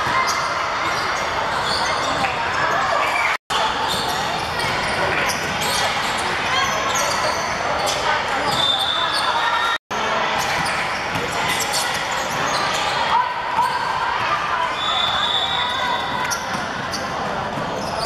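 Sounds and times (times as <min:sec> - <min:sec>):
sneaker squeaks: 0:00.0 - 0:09.8, 0:10.4 - 0:18.0.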